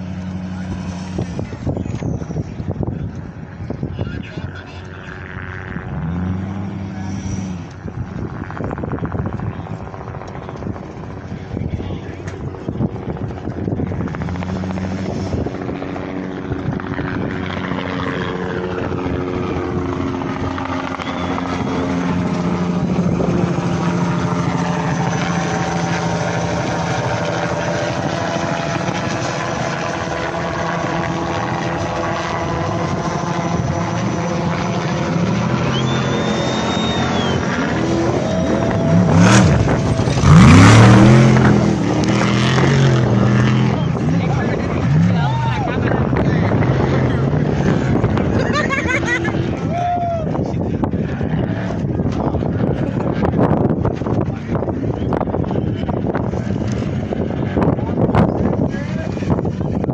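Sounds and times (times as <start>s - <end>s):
race truck engine passing: 4.6s - 8.1s, 17.8s - 49.8s.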